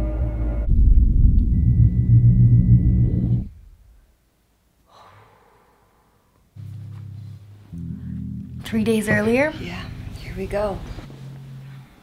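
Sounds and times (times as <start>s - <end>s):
loud deep rumble: 0.0s - 3.9s.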